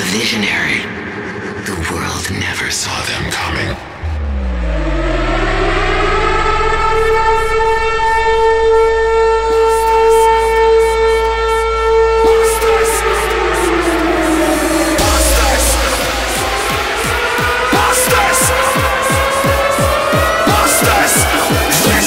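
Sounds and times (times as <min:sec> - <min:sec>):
low bass drone: 0:03.8 - 0:22.0
siren-like wail: 0:03.9 - 0:22.0.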